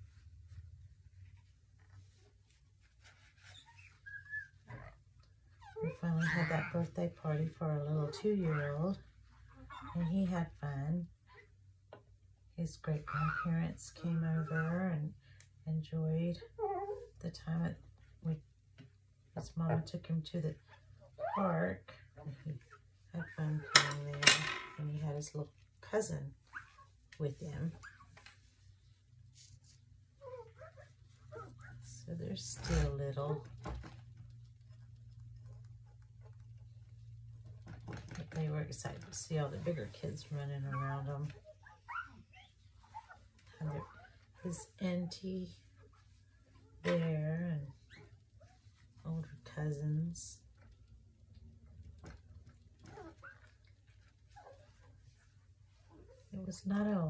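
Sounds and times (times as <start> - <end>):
cloth wiping plastic mat: 0.0 - 10.7, 24.8 - 50.2, 51.6 - 57.0.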